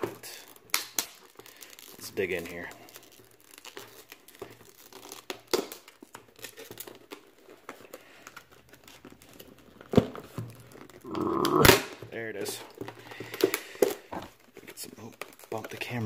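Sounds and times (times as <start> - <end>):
plastic packaging crinkling: 0.0 - 16.0
plastic snapping: 0.6 - 1.3.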